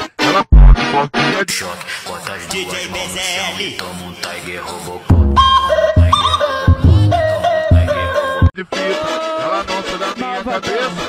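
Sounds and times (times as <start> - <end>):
phonk music with bass hits: 0.3 - 2.7, 5.1 - 8.5.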